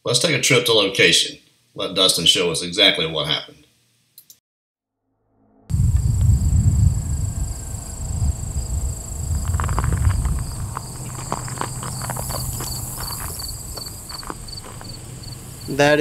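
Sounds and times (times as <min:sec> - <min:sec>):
low rumble: 0:05.0 - 0:15.8
insects buzzing: 0:05.7 - 0:16.0
footsteps crunching on gravel: 0:09.2 - 0:15.8.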